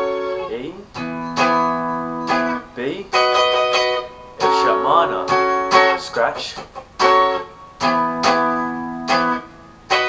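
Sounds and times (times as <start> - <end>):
electric guitar strumming: 0.0 - 10.0.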